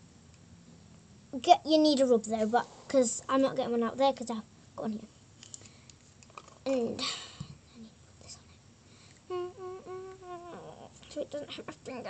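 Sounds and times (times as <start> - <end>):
girl humming a tune: 9.3 - 11.7.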